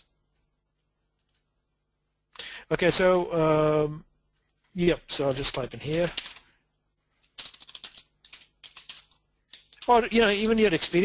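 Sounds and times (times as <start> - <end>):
computer keyboard typing: 5.8 - 6.5, 7.2 - 10.8.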